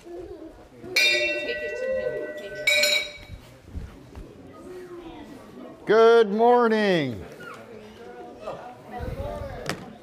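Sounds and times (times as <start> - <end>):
low chatter: 0.0 - 10.0
bell ringing: 1.0 - 3.4.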